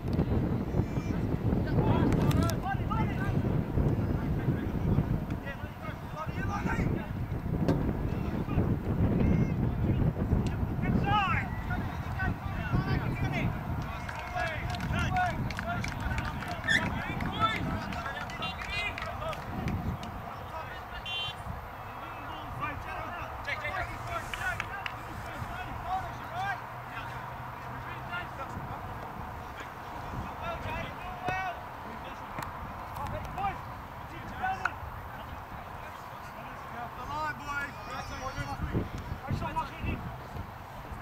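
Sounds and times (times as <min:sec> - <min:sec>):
people calling out: 0:16.1 - 0:19.4, 0:20.2 - 0:27.2.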